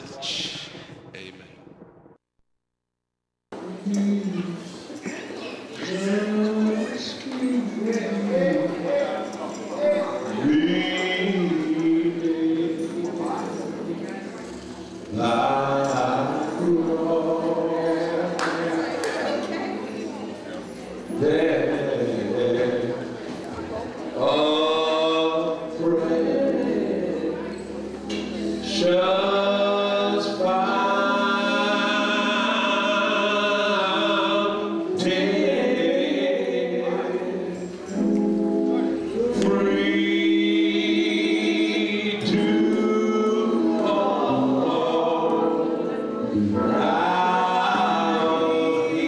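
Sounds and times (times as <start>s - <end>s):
man singing into a microphone: 3.6s - 5.0s, 5.8s - 14.0s, 15.1s - 19.0s, 21.1s - 23.3s, 24.2s - 38.0s, 38.9s - 49.0s
voices singing along: 5.8s - 14.0s, 15.1s - 19.7s, 24.0s - 38.1s, 38.9s - 49.0s.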